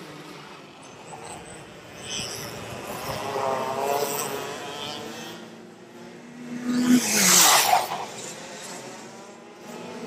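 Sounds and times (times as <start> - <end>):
racing kart engines passing: 0.0 - 10.0.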